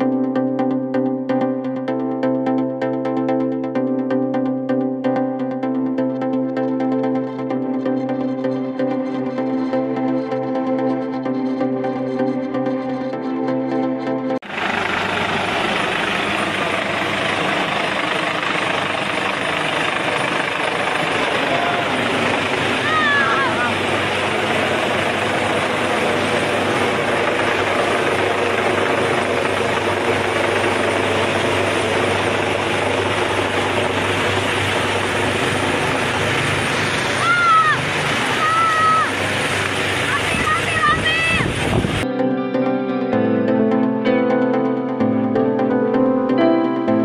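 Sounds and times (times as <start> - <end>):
helicopter rotor and engine: 5.7 - 42.1
person calling: 21.4 - 23.8, 37.2 - 39.2.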